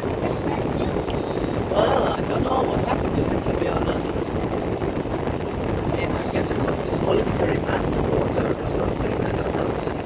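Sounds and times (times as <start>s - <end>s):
road and engine noise in car: 0.0s - 10.0s
wind rumbling on microphone: 0.0s - 10.0s.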